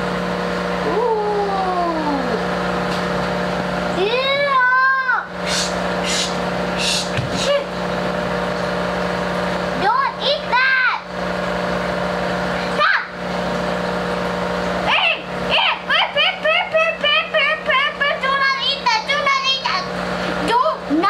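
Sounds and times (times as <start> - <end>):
aquarium equipment humming: 0.0 - 21.0
child's high-pitched calls: 12.8 - 13.2.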